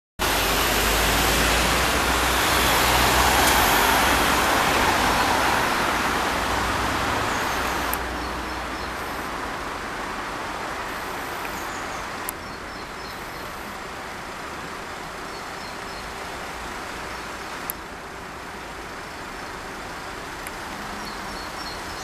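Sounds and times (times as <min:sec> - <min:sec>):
passing cars rushing: 0:00.2 - 0:22.0.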